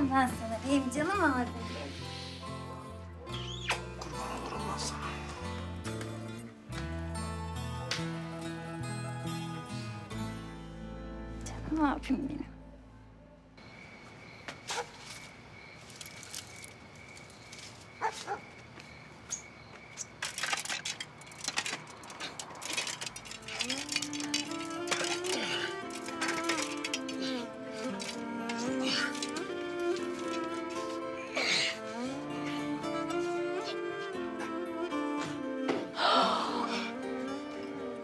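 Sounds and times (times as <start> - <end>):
string music: 0.0 - 13.2, 22.6 - 38.0
rustles and knocks of climbing: 14.5 - 31.1.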